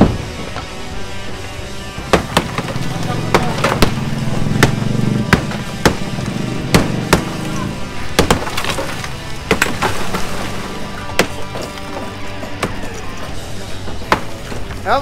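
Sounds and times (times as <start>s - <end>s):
background music: 0.0s - 15.0s
voices: 0.5s - 9.7s, 10.4s - 15.0s
sledgehammer striking concrete wall: 2.0s - 7.5s, 8.1s - 12.9s
concrete breaking off: 2.0s - 14.8s.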